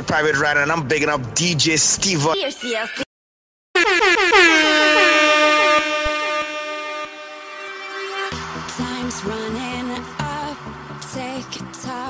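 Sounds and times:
electronic horn-like tone: 3.8 - 8.4.

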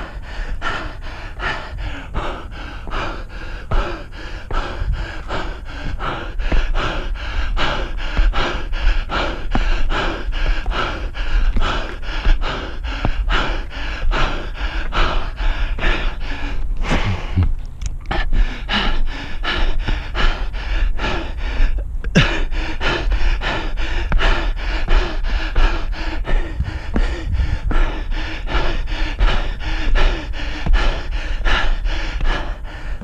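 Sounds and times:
person breathing hard and rapidly: 0.0 - 33.0
steady low rumble: 0.0 - 33.0.

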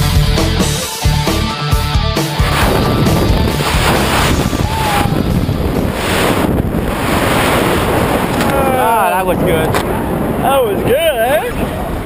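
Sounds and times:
wind rushing over microphone: 2.4 - 12.0.

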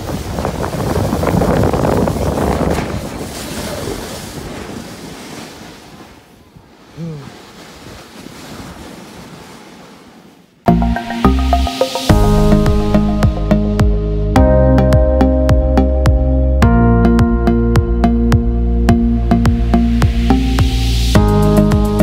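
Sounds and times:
snow tube hissing over snow: 0.0 - 6.3
wind on microphone: 0.0 - 10.2
person calling out: 7.0 - 7.4.

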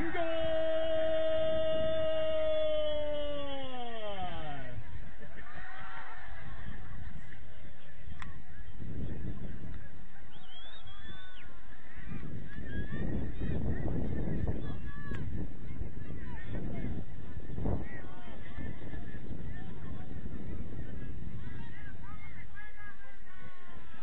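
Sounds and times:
wind gusting on microphone: 8.7 - 9.8, 11.9 - 22.1.

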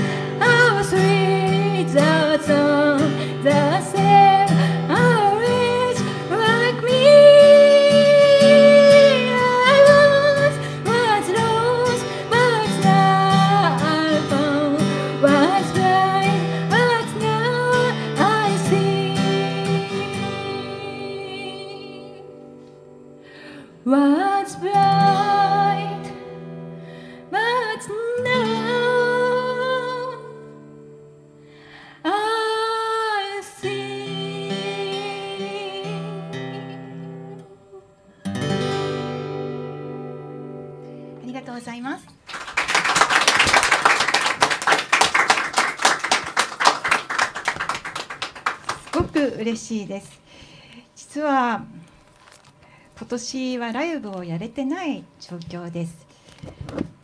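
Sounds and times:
woman singing: 0.0 - 22.4, 23.8 - 26.2, 27.3 - 30.6, 32.0 - 37.8
acoustic guitar chord ringing: 0.0 - 32.4, 33.6 - 41.8
short breath: 23.2 - 23.8, 26.8 - 27.3, 31.4 - 32.0, 50.2 - 51.0, 52.6 - 53.0, 56.1 - 56.8
people clapping: 42.1 - 49.3.

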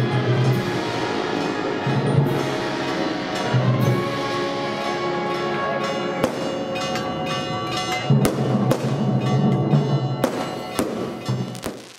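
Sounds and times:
band playing funeral march: 0.0 - 11.8
drum beats: 0.0 - 11.9.

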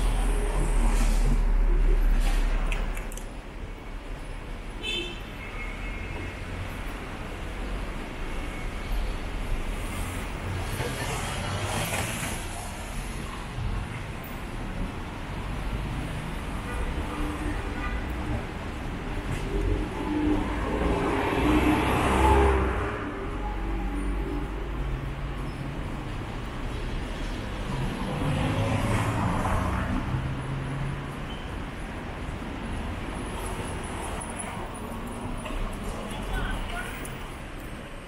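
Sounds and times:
rumble of cars on road: 0.0 - 38.0.

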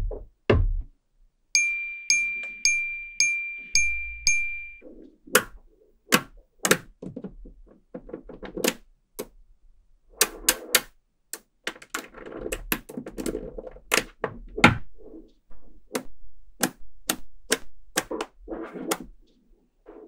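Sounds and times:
ringing chime tone: 1.6 - 4.8.

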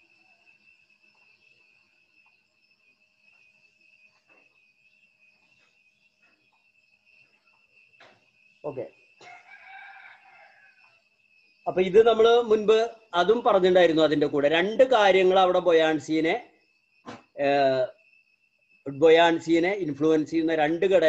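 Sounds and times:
crickets chirping: 0.0 - 21.0
rooster crowing: 9.2 - 11.1.

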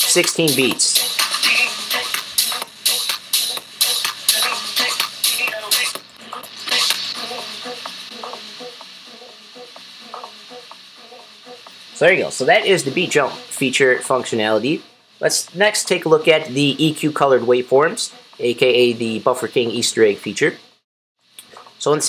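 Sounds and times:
techno music: 0.0 - 20.2.

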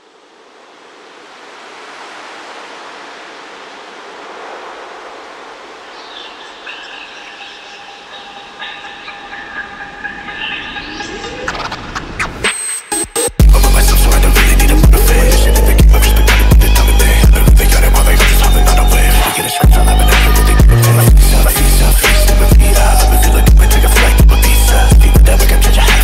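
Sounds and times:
rising sweep: 0.0 - 24.9
rushing wash of noise: 0.0 - 24.9
held synth tones: 5.9 - 23.8.

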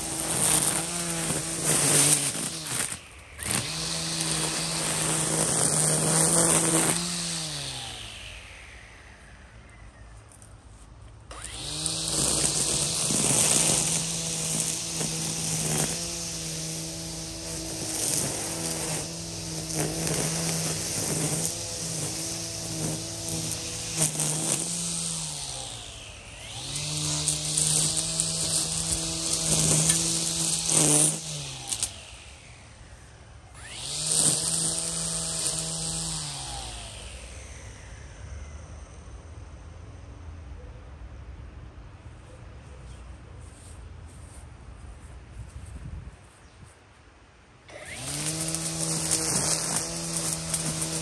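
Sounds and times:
trimmer line whirring through grass: 0.0 - 40.1, 47.6 - 51.0
string trimmer motor whining: 0.0 - 40.4, 47.6 - 51.0.

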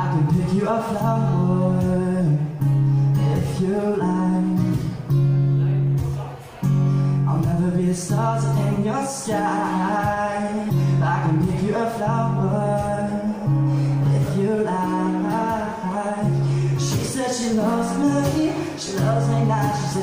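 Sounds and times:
acoustic guitar strumming chords: 0.0 - 20.0
man singing: 0.0 - 20.0.

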